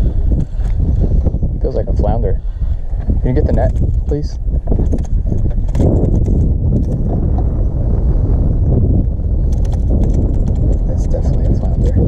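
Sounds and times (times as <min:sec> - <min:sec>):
microphone handling noise: 0:00.0 - 0:12.0
wind rumble on microphone: 0:00.0 - 0:12.0.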